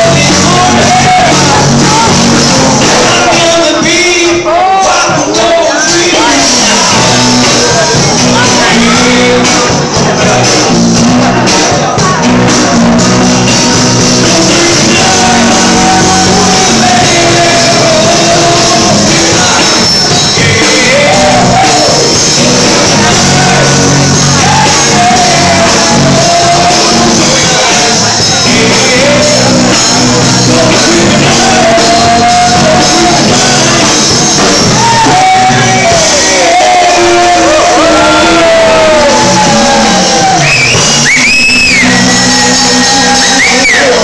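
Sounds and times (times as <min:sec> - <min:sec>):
person singing: 0:00.0 - 0:44.0
rock band playing live: 0:00.0 - 0:44.0.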